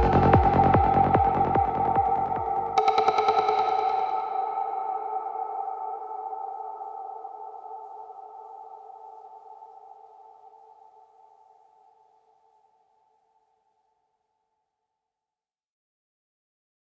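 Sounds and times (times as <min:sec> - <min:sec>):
sustained synthesizer chord: 0:00.0 - 0:11.6.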